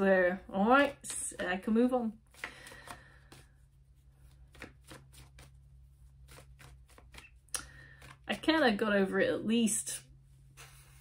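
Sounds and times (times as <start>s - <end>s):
cards being shuffled: 0.7s - 8.5s.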